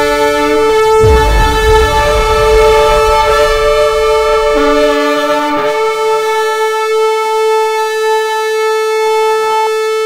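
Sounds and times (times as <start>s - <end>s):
deep rumble: 0.1s - 6.9s.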